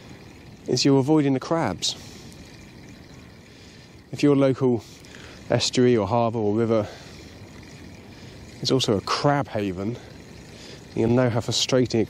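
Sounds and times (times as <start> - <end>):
faint steady background hiss: 0.0 - 12.0.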